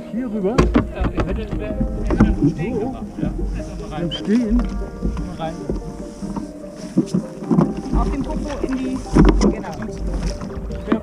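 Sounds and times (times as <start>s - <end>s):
knocks on kayak hull: 0.6s - 3.6s.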